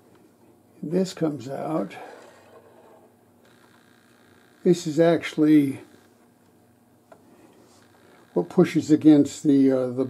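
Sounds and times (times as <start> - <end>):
metal rod sliding: 1.9 - 3.1.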